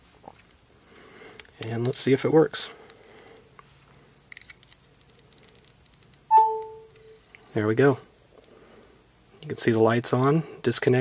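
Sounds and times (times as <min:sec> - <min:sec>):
phone charging chime: 0:06.3 - 0:07.2.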